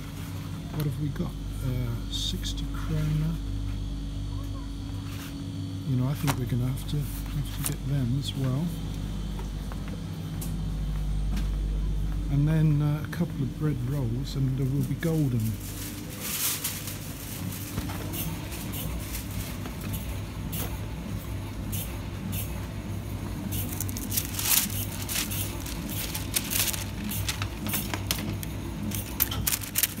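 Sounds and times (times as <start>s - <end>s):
steady low hum: 0.0s - 30.0s
rustles and clicks: 15.3s - 20.0s, 23.6s - 30.0s.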